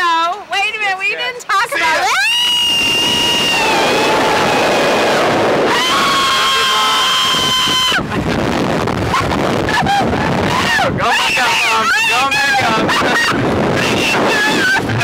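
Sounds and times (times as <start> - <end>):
woman screaming: 1.8 - 4.8, 5.7 - 8.0, 9.1 - 13.3, 13.9 - 14.9
wind rushing over microphone: 2.0 - 15.0.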